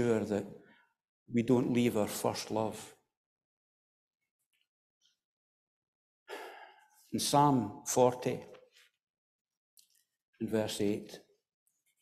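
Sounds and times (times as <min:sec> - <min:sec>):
man drawing breath: 0:06.3 - 0:07.0.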